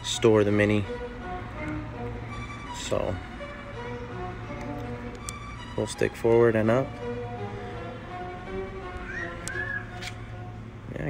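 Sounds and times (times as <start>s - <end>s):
quiet string music: 0.0s - 11.0s.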